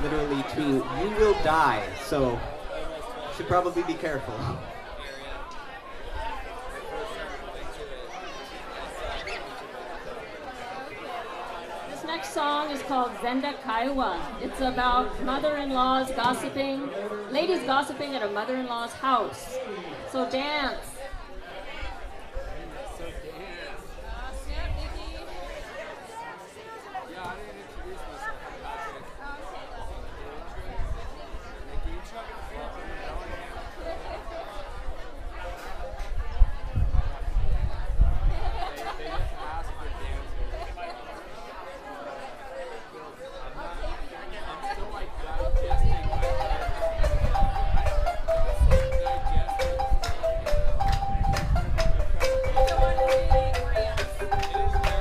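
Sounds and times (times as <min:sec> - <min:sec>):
people chattering: 0:00.0 - 0:55.0
marimba ensemble playing: 0:45.4 - 0:55.0
sharp percussive strikes: 0:45.5 - 0:55.0.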